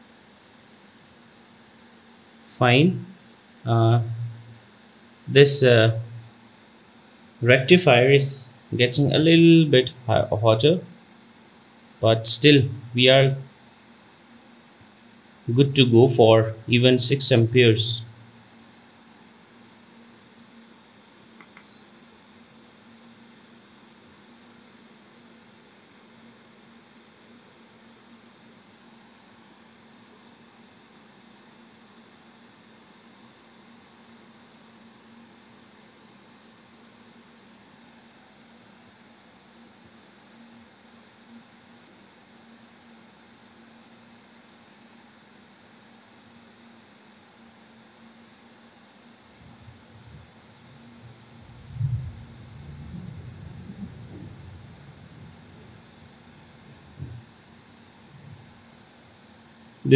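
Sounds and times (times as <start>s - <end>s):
low steady hum: 0.0s - 41.6s, 47.9s - 59.9s
cooling fan whirring: 0.0s - 45.4s, 48.0s - 59.9s
small click: 21.4s - 21.9s.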